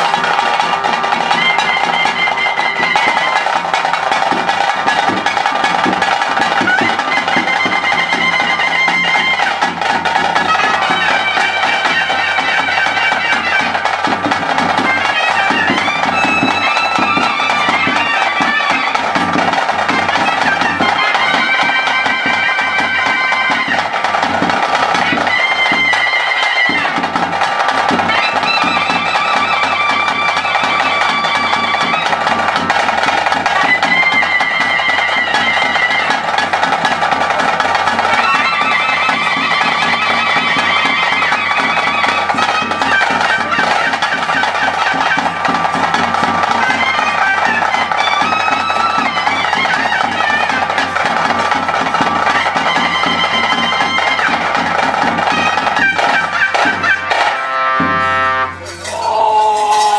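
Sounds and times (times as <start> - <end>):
double-reed pipe melody: 0.0 - 59.9
drums beating: 0.0 - 59.9.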